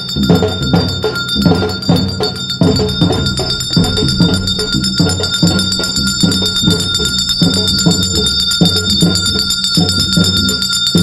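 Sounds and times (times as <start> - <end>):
brass hand bell ringing: 0.0 - 11.0
drum beating a regular rhythm: 0.0 - 11.0.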